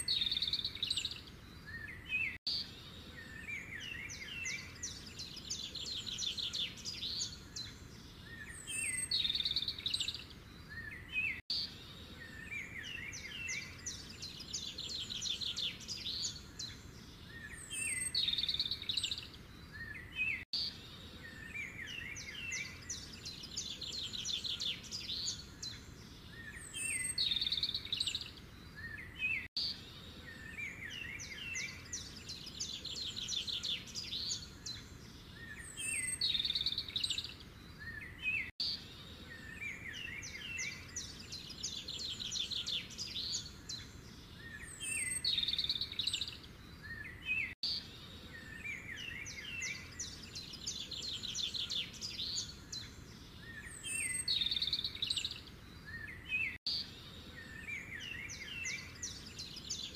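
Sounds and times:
birdsong chirps and trills: 0.0s - 59.9s.

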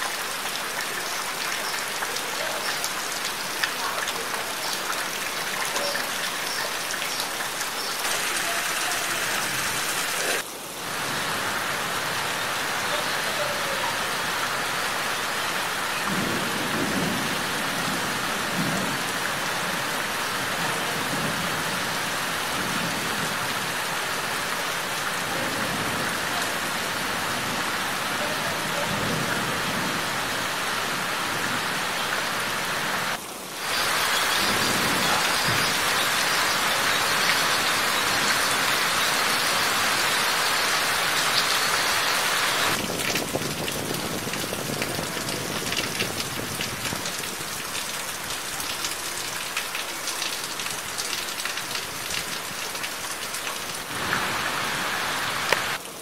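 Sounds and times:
rain falling on leaves: 0.0s - 56.0s.

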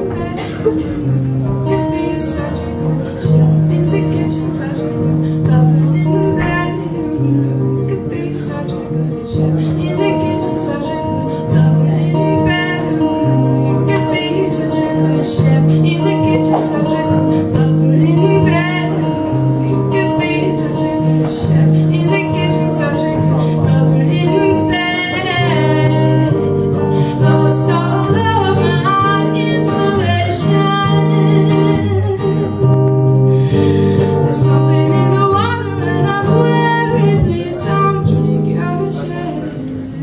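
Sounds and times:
acoustic guitar strumming: 0.0s - 40.0s
woman singing: 0.0s - 40.0s.

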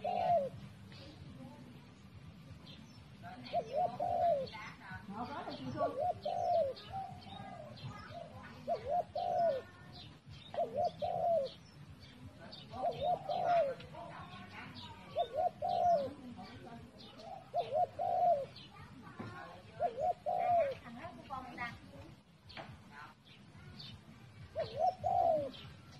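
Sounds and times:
dove cooing: 0.0s - 1.4s, 2.6s - 21.8s, 23.8s - 25.9s
small birds chirping: 0.0s - 25.9s.

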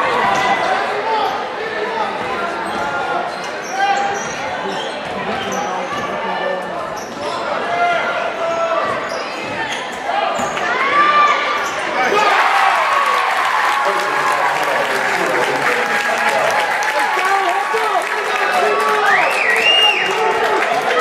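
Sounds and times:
people shouting in a gym: 7.2s - 13.7s.

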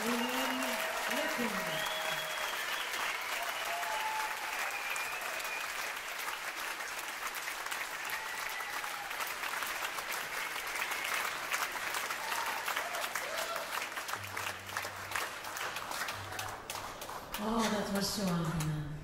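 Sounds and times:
crowd applauding: 0.0s - 18.9s.

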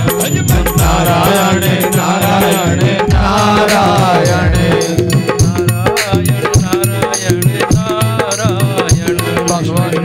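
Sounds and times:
devotional music with drum: 0.0s - 10.0s.

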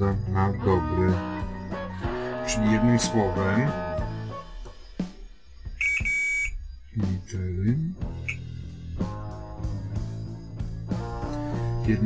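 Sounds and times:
multimeter beeping: 5.8s - 6.6s.

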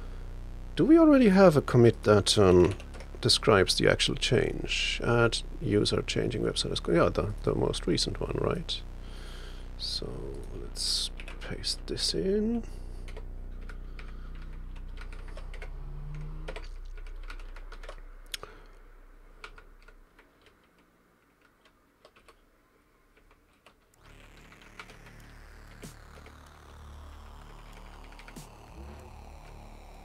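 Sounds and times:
low background hum: 0.0s - 30.0s
keyboard keystrokes and clicks: 13.1s - 18.4s, 19.4s - 22.4s.

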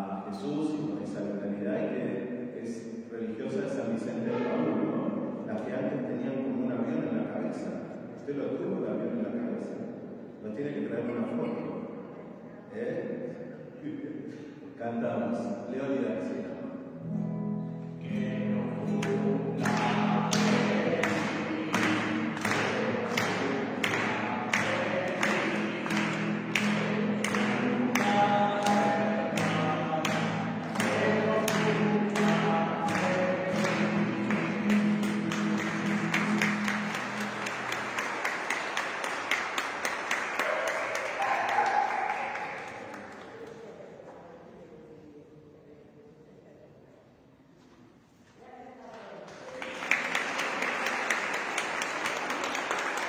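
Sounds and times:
hymn sung with accompaniment: 18.0s - 37.2s
sharp rhythmic strikes: 18.0s - 38.0s.

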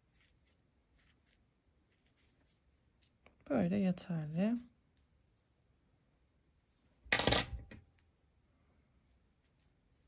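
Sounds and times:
scissors clattering on tabletop: 7.1s - 7.8s.

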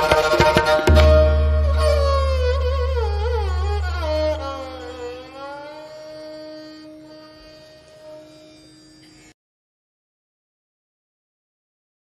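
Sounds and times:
bowed string instrument held note: 0.0s - 9.3s
lower steady drone note: 0.9s - 9.1s.

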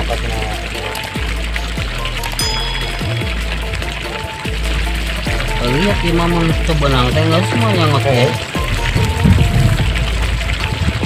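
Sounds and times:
background music with deep bass: 0.0s - 11.0s.

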